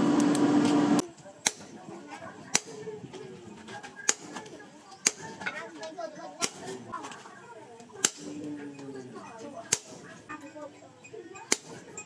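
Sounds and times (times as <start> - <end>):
faint voices: 0.7 - 12.0.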